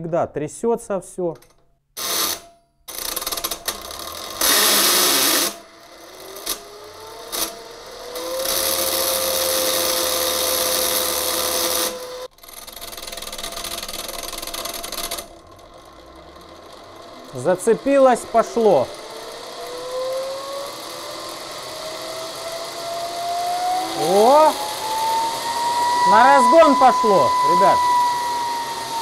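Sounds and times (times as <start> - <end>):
electric motor buzzing and rattling: 2.0 - 29.0
rotor whine rising in pitch: 3.8 - 29.0.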